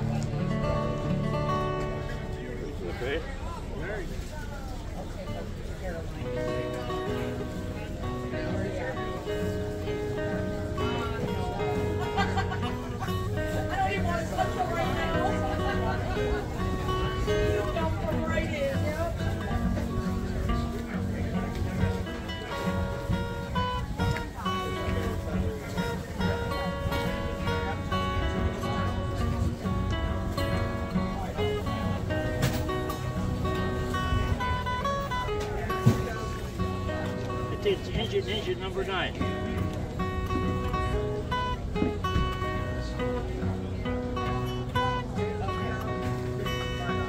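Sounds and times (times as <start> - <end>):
acoustic guitar: 0.0 - 47.0.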